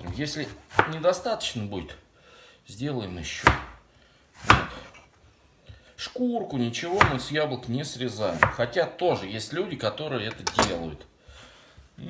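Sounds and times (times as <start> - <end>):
knife chopping apple: 0.0 - 1.1, 3.4 - 3.8, 4.4 - 4.9, 6.9 - 7.3, 8.3 - 8.8.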